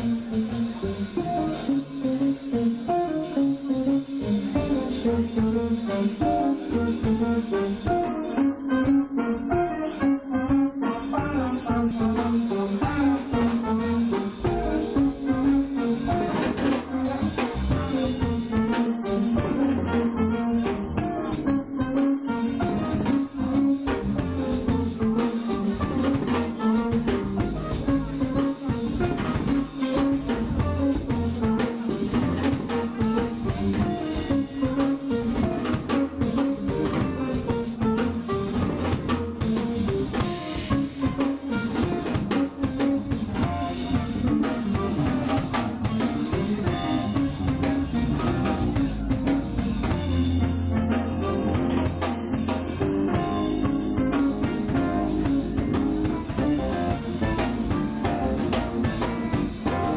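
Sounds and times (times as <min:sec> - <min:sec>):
jazz band playing: 0:00.0 - 0:59.9
trumpet: 0:00.0 - 0:59.9.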